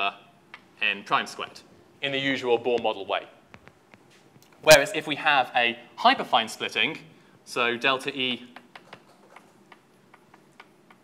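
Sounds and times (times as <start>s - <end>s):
chalk clicking on blackboard: 8.6s - 11.0s.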